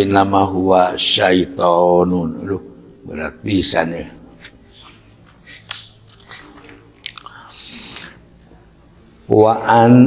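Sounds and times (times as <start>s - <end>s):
book pages rustling: 4.4s - 7.3s.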